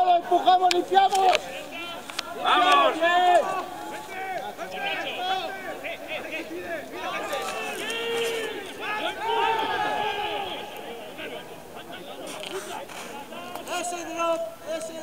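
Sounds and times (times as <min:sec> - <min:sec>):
men shouting: 0:00.0 - 0:12.3.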